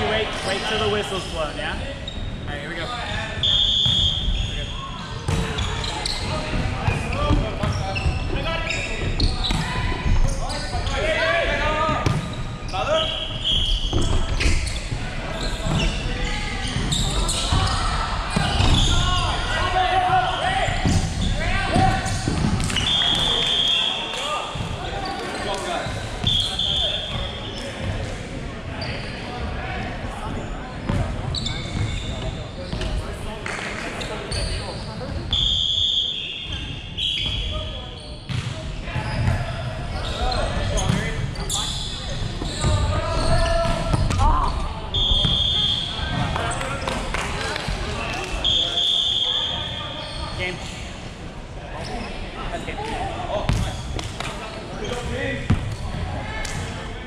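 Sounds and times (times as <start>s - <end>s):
players shouting calls: 0.0s - 27.9s, 34.3s - 38.2s, 38.9s - 50.7s
shrill whistle blasts: 3.4s - 4.8s, 13.0s - 14.0s, 22.8s - 24.0s, 26.2s - 27.2s, 35.3s - 37.6s, 44.9s - 46.1s, 48.4s - 50.0s.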